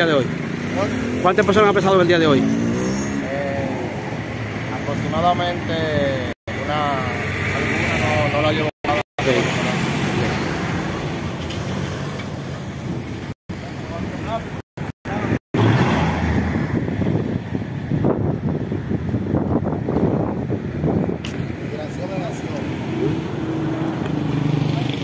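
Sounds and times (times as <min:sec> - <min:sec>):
street traffic: 0:00.0 - 0:25.0.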